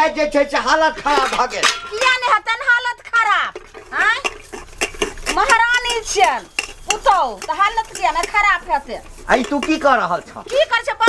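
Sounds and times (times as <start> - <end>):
steel utensils clinking: 0.4 - 11.0.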